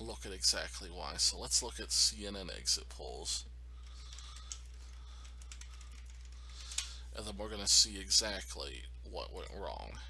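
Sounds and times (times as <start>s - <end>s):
low steady hum: 0.0s - 10.0s
computer keyboard typing: 3.8s - 6.9s.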